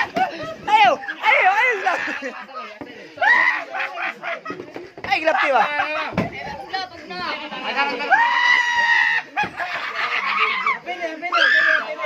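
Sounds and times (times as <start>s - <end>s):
excited shouting voices: 0.0s - 4.5s, 5.1s - 12.0s.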